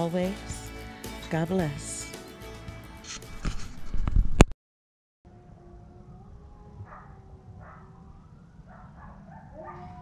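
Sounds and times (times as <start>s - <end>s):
siren: 5.3s - 10.0s
dogs howling and yipping: 5.5s - 10.0s.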